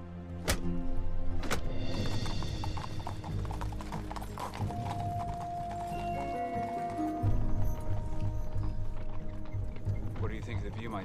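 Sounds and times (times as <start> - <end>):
background music long notes: 0.0 - 11.0
hooves clip-clopping on dirt: 1.7 - 11.0.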